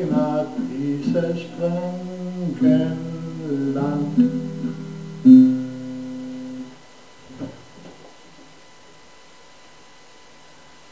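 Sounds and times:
strummed guitar chord: 0.0s - 7.6s.

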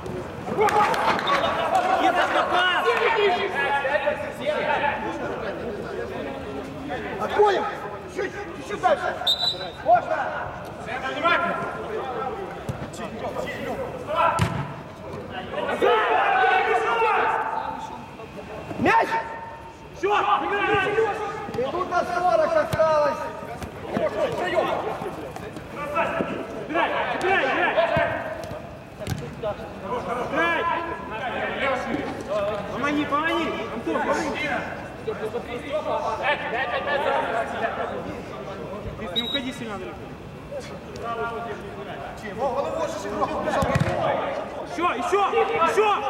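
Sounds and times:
ball being kicked thuds: 14.4s - 14.7s, 28.0s - 29.3s, 43.6s - 44.0s.

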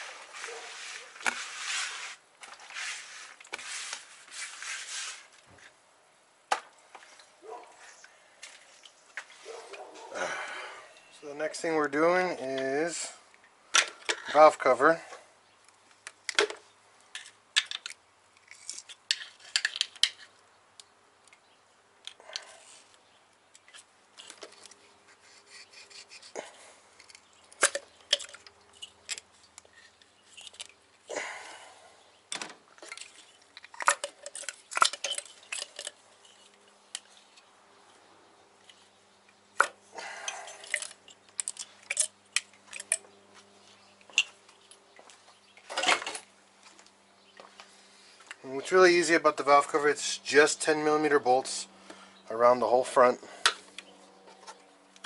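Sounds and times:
tools rattling: 27.0s - 30.8s, 32.3s - 37.2s, 39.6s - 43.2s
metal engine parts clicking: 39.6s - 43.2s.

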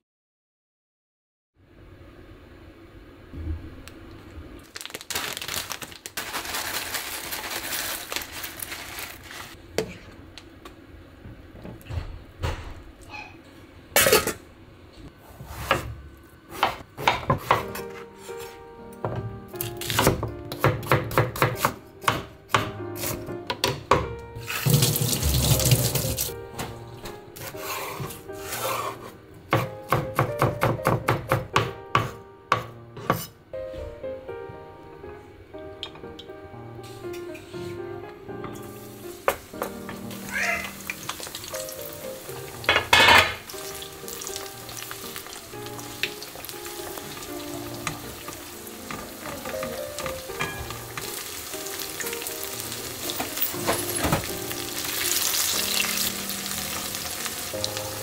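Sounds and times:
knife chopping on cutting board: 16.5s - 18.5s, 19.8s - 24.1s, 29.5s - 33.3s
soft background music: 17.2s - 58.0s
water running from tap: 24.4s - 26.4s.

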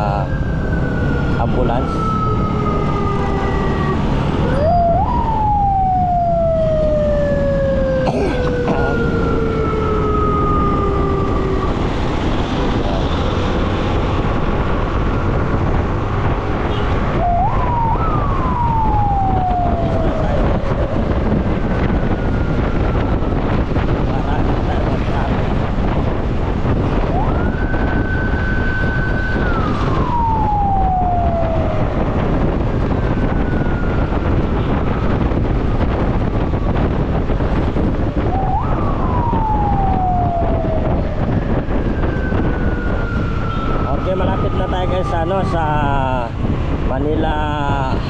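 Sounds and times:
ambulance siren wailing: 0.0s - 48.0s
wind noise on microphone: 0.0s - 48.0s.

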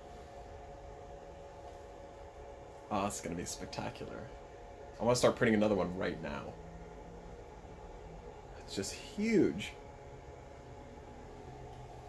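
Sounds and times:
faint constant tones: 0.0s - 12.0s
indoor background hum: 0.0s - 12.0s.

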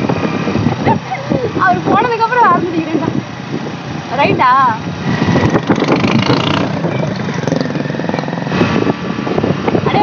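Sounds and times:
motorcycle engine running: 4.9s - 9.9s.

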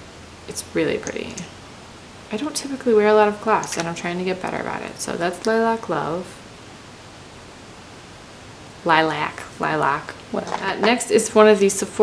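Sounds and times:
recording hiss: 0.0s - 12.0s
woman speaking: 0.5s - 1.5s, 2.3s - 6.4s, 8.8s - 12.0s.

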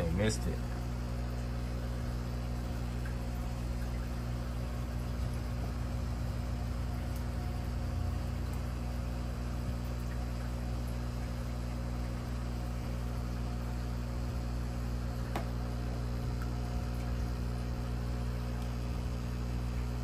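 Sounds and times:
aquarium pump humming: 0.0s - 20.0s.

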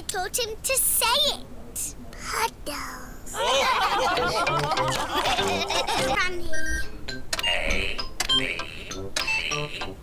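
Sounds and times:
cartoon keyboard typing: 7.3s - 9.9s.

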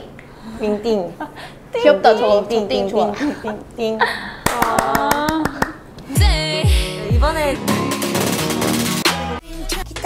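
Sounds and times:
young woman sing-song voice: 4.7s - 7.8s.

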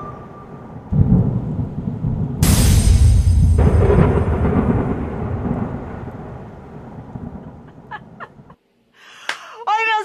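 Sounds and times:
rumbling thunder: 0.9s - 8.2s.

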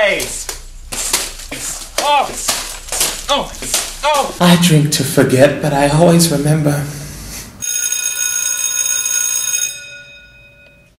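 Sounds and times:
high-pitched ringing tone: 7.6s - 11.0s.

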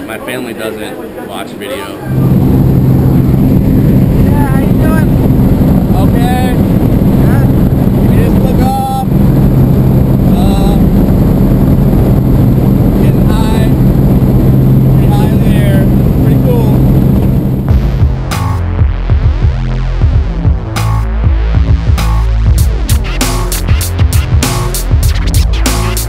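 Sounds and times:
propeller plane engine droning: 2.0s - 18.0s.

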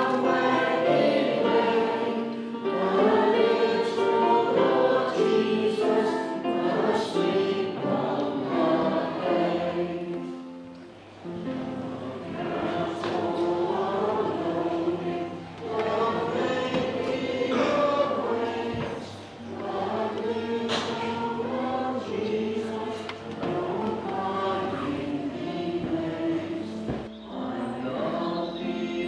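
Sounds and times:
choir singing: 0.0s - 29.0s.

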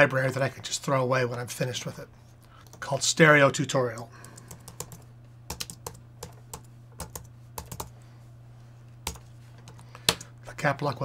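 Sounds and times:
typing on computer keyboard: 4.3s - 7.9s, 9.1s - 10.3s.

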